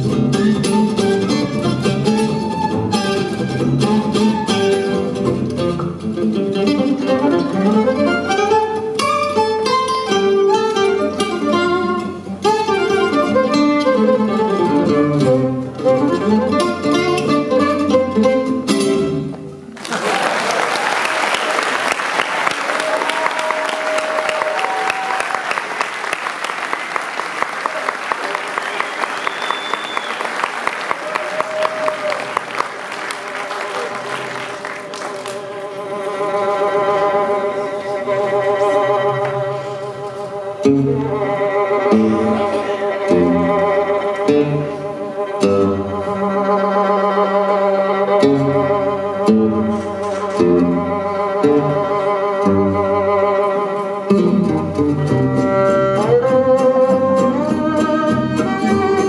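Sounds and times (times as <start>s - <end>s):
gypsy jazz acoustic guitar solo: 0.0s - 19.7s, 34.1s - 59.0s
faint band playing: 0.0s - 19.8s, 30.2s - 59.0s
audience applause: 19.7s - 36.2s.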